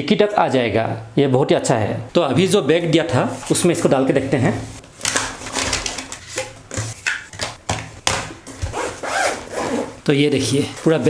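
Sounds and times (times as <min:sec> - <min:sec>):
bag zip being closed: 0:08.6 - 0:10.0
cloth bag rustling: 0:08.6 - 0:10.0.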